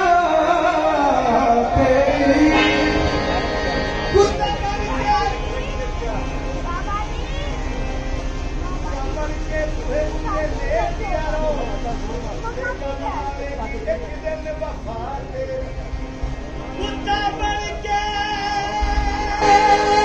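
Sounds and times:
murmur of men's voices: 0:00.0 - 0:20.0
music: 0:00.0 - 0:20.0
steady low hum: 0:01.0 - 0:20.0.

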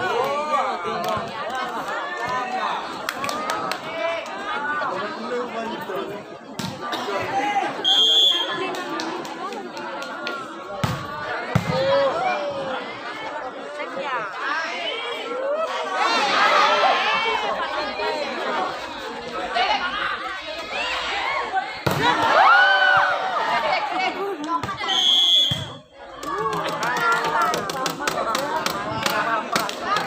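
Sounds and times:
spectators chattering and calling out: 0:00.0 - 0:30.0
whistle blast: 0:07.8 - 0:08.5, 0:24.8 - 0:25.8.

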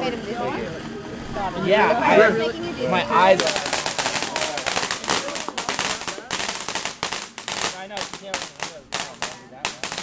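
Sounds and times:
firework crackling pops: 0:03.3 - 0:10.0.

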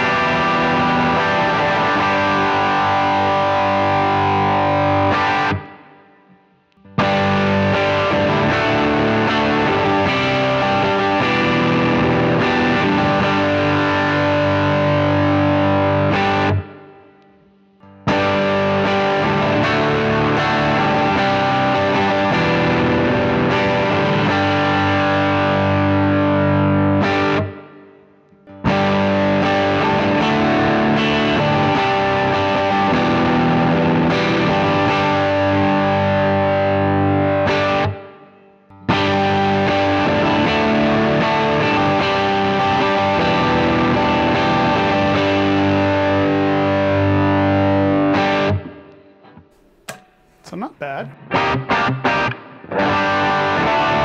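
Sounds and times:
distorted electric guitar chords: 0:00.0 - 0:17.3, 0:17.9 - 0:49.0, 0:49.6 - 0:54.0.

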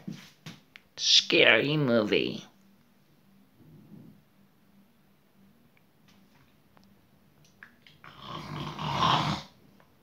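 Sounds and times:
harsh raspy growl: 0:08.0 - 0:09.6.

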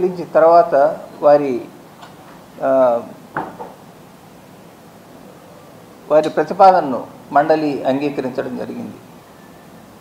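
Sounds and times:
man speaking into microphone: 0:00.0 - 0:01.8, 0:02.6 - 0:03.2, 0:06.1 - 0:09.0
low room hiss: 0:00.0 - 0:10.0.

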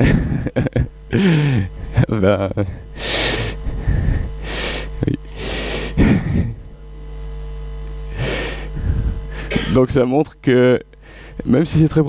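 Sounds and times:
soft breathy laughter: 0:00.0 - 0:03.8
low electrical hum: 0:00.0 - 0:12.0.

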